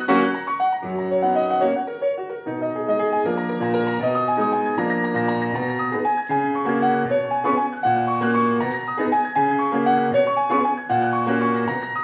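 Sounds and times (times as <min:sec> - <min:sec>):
solo grand piano: 0:00.0 - 0:12.0.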